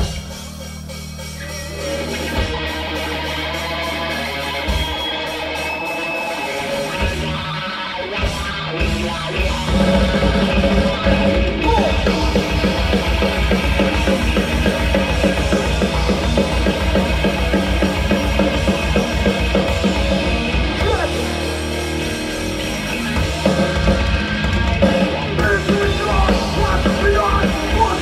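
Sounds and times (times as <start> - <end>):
bass guitar: 0.0 - 28.0
drum kit: 0.0 - 28.0
electric guitars chugging riff: 0.0 - 28.0
metal band playing loud: 0.0 - 28.0.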